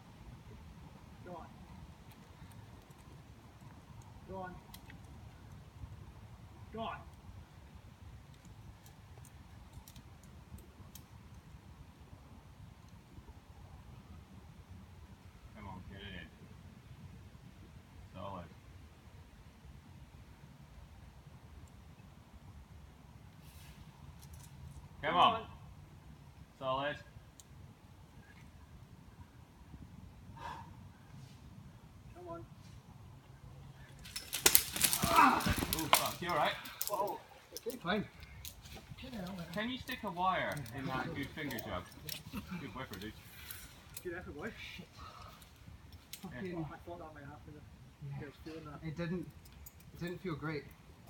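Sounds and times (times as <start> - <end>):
climbing gear and rope clattering: 2.0 - 4.1, 8.2 - 11.5, 33.6 - 46.6, 49.0 - 50.8
climber shouting: 34.4 - 37.4.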